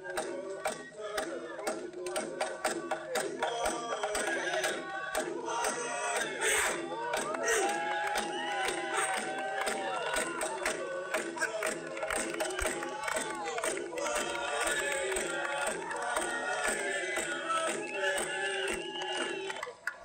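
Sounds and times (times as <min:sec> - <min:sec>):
music: 0:00.0 - 0:19.7
crowd shouting and chanting: 0:00.0 - 0:20.0.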